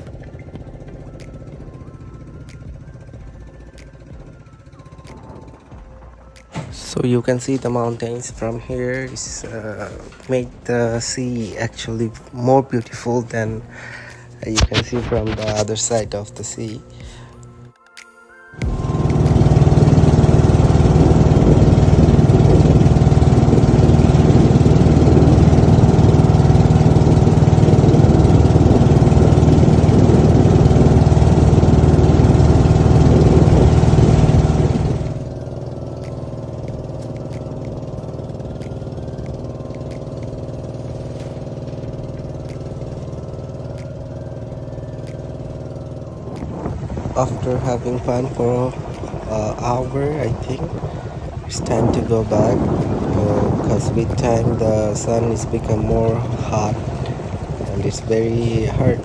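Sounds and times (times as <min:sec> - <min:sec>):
boat engine running: 0:00.0 - 0:17.7, 0:18.6 - 0:59.0.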